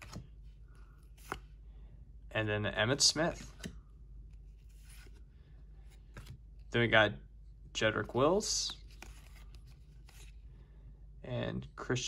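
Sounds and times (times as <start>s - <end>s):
trading cards handled: 0.0s - 1.6s, 2.9s - 6.7s, 7.9s - 10.4s.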